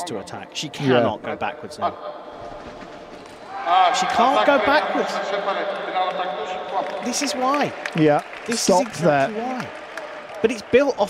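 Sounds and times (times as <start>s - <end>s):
man commentating: 0.0s - 2.0s, 3.6s - 11.0s.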